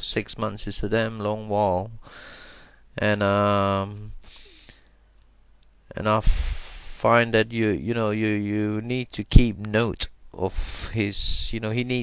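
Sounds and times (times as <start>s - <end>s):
man speaking: 5.9s - 12.0s.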